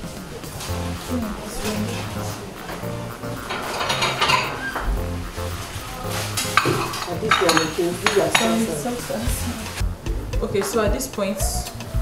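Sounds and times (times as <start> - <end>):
background music: 0.0 - 12.0
spoon clinking on dishes: 3.4 - 4.9, 6.1 - 9.1.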